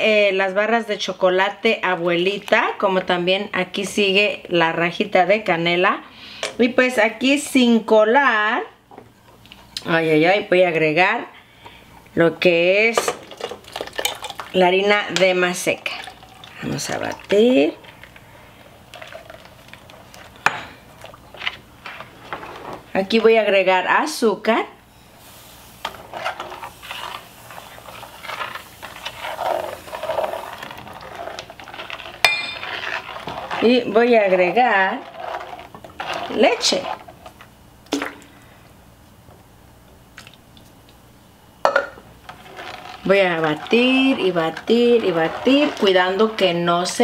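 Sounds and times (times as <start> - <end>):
utensil stirring liquid in pot: 13.0 - 22.8, 25.2 - 38.1, 42.2 - 47.0
milk pouring into a pot: 13.2 - 14.6, 15.5 - 20.4.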